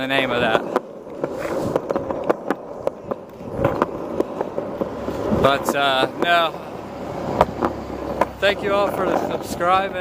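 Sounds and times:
skateboard clicks: 0:00.0 - 0:06.4, 0:07.2 - 0:09.4
skateboard wheels rolling on concrete: 0:00.0 - 0:10.0.

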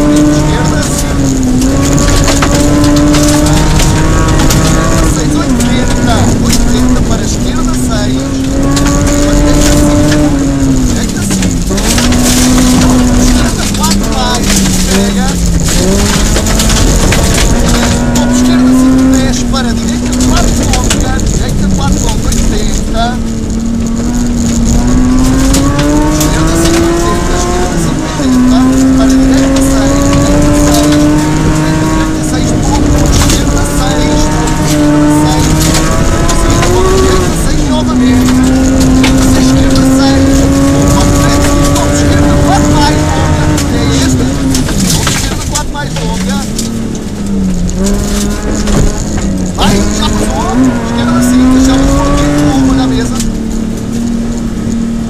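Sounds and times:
rally car engine at high revs: 0:00.0 - 0:55.0
road noise on dirt road: 0:00.0 - 0:55.0.

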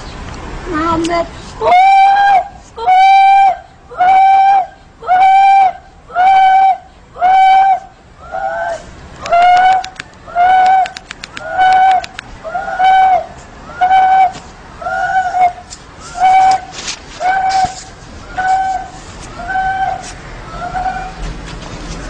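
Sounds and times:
sharp clicks: 0:09.1 - 0:12.3.

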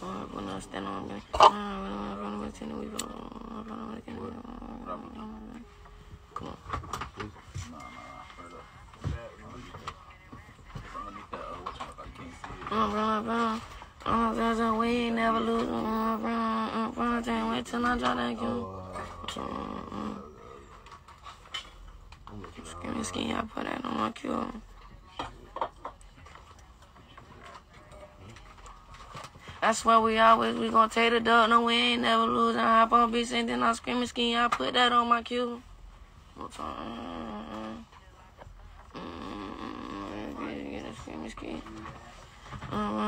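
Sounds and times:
faint steady drone: 0:00.0 - 0:43.0.

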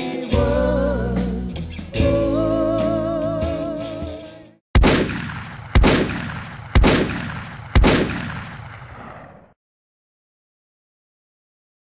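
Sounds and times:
heavy echoing gunshot booms: 0:04.8 - 0:09.6.

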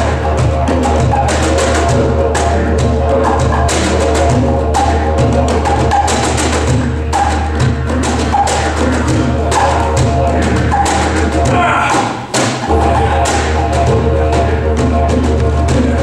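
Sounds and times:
didgeridoo drone: 0:00.0 - 0:16.0
hand percussion strikes: 0:00.0 - 0:16.0.

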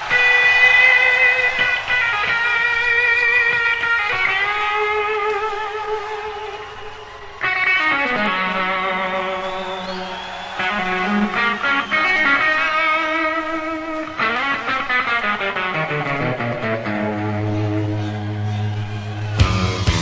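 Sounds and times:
electric guitar chords: 0:00.0 - 0:20.0.

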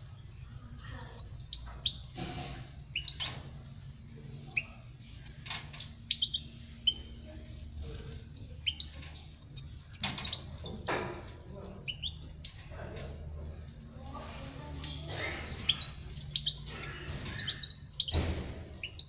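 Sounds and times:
goldfinch chirping and twittering: 0:01.0 - 0:02.0, 0:02.9 - 0:03.7, 0:06.1 - 0:07.1, 0:08.6 - 0:10.9, 0:15.6 - 0:18.2.

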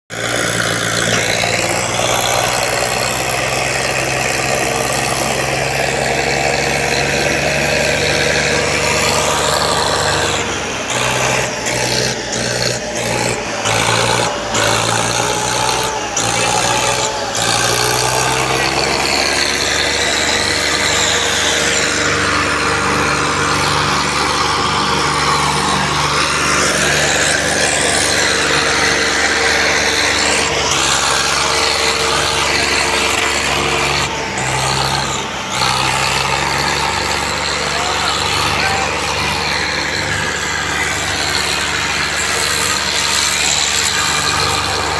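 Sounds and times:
tractor diesel engine running: 0:00.0 - 0:44.9.

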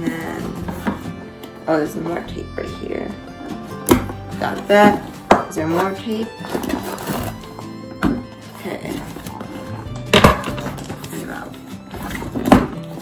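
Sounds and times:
cardboard box handling: 0:00.0 - 0:01.0, 0:04.5 - 0:13.0
background music: 0:00.0 - 0:13.0
scissors cutting packing tape: 0:06.4 - 0:07.5.

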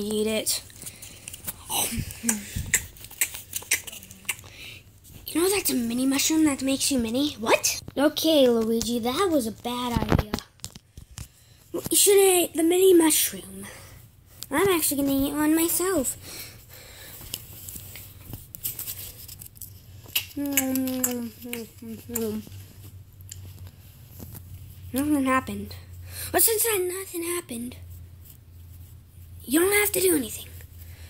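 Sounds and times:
munching clicks and crunches: 0:00.7 - 0:04.6.

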